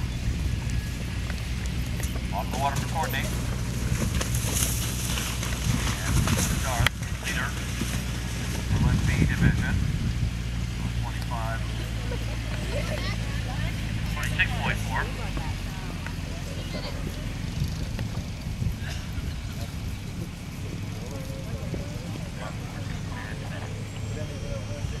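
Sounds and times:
low motor hum: 0.0 - 25.0
chatter of spectators: 10.6 - 25.0.

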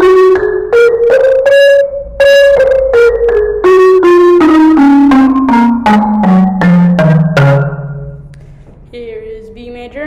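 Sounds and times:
marimba notes: 0.0 - 8.3.

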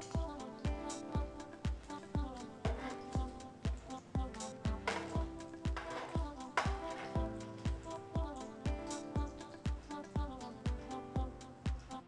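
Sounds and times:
kick drum beat: 0.2 - 11.9.

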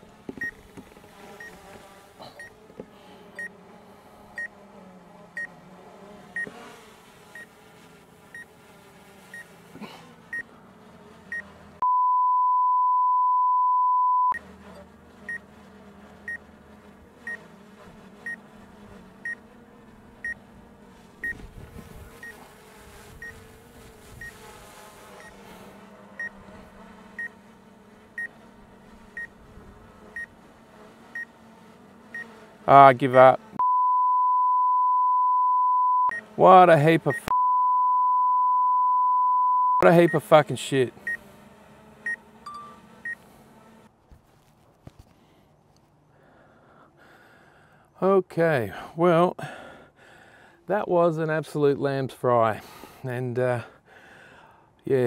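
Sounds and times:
drone buzzing: 0.0 - 43.9
censor bleep tone: 11.8 - 14.4, 33.6 - 36.2, 37.1 - 39.8
short high beep: 11.8 - 14.4, 33.6 - 36.2, 37.2 - 39.8.

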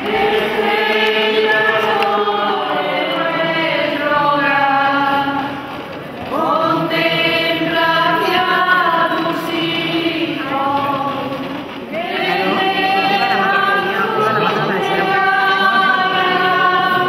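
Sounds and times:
group singing a hymn: 0.0 - 17.0.

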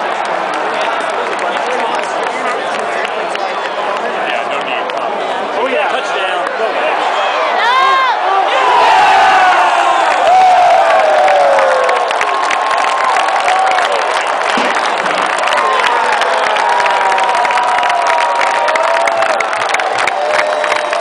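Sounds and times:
stadium crowd cheering and yelling: 0.0 - 21.0
hands clapping close by: 11.2 - 21.0.

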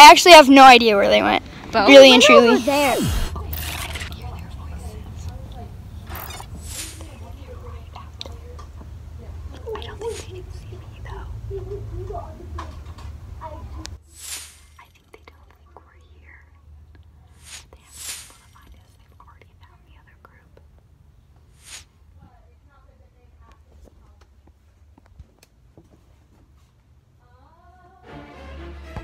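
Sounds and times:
person whispering: 1.8 - 5.4, 9.6 - 11.4, 14.8 - 20.8.

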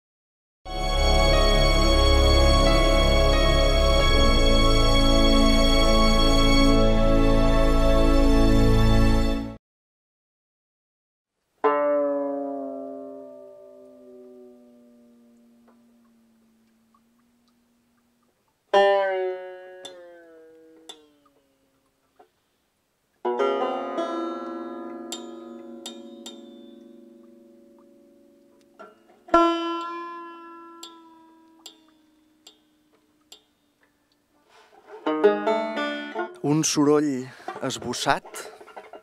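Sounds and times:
banjo chords ringing: 0.7 - 8.4, 11.6 - 18.0, 18.7 - 21.7, 23.2 - 39.0
banjo picked notes: 11.6 - 17.2, 18.7 - 21.7, 23.2 - 39.0
banjo string clicks: 15.4 - 22.3, 24.4 - 34.2.

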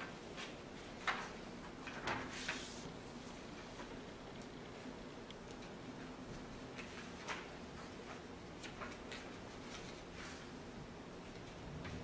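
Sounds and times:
small ticks and clicks: 3.8 - 6.1.

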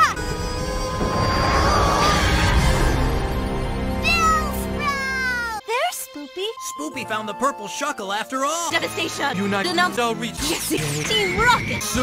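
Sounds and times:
background music: 0.0 - 12.0
short rising yelp: 0.6 - 4.5.

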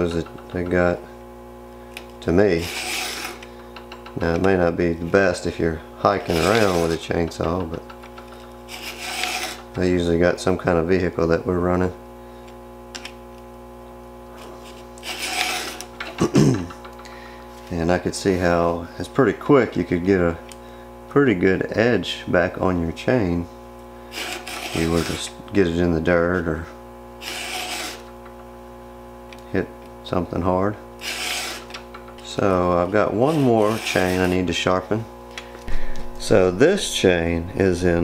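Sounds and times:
steady low hum: 0.0 - 38.0
file rasping on chainsaw chain: 2.5 - 3.5, 6.2 - 7.2, 8.7 - 9.7, 15.0 - 15.9, 24.1 - 25.3, 27.2 - 28.1, 31.0 - 31.8, 33.0 - 34.5.

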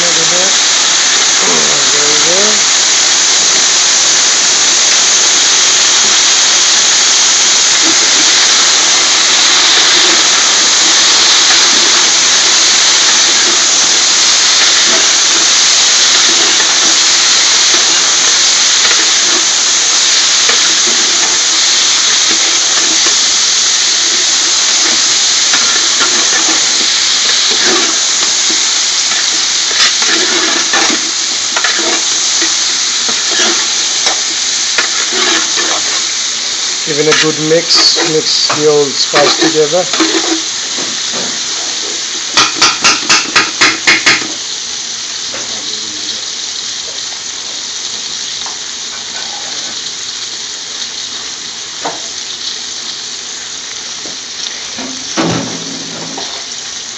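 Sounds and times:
peppers sizzling in hot oil: 0.0 - 56.9
ladle stirring in pot: 24.8 - 31.0, 31.6 - 34.2, 34.8 - 36.0, 37.1 - 40.5.

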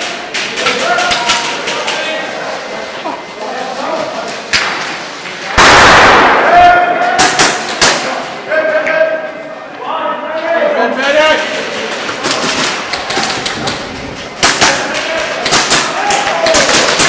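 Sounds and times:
players shouting in echoing hall: 0.0 - 2.9, 5.4 - 17.0
airsoft guns firing: 5.5 - 8.4, 12.0 - 17.0
pellets striking: 11.9 - 17.0.

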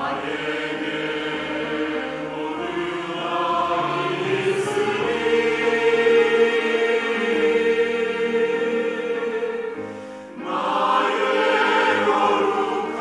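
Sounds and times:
church choir singing held chords: 0.0 - 13.0.

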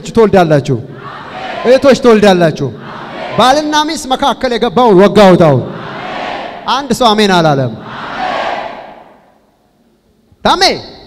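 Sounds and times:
congregation shouting together: 0.9 - 3.9, 5.5 - 6.9, 7.6 - 9.4.

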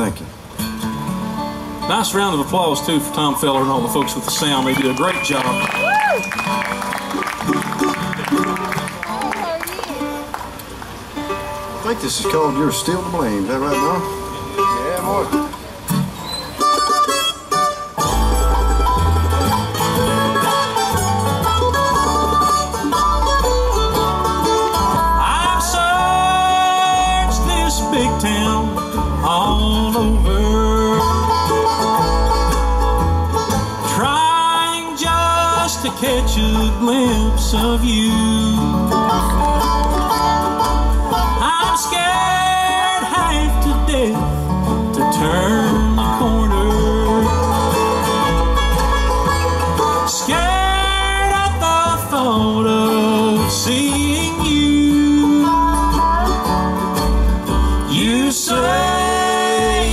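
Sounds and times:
bluegrass band playing: 0.0 - 59.9
upright bass pulsing: 1.9 - 10.2, 18.0 - 59.9
sliding steel-bar guitar notes: 11.1 - 59.9.

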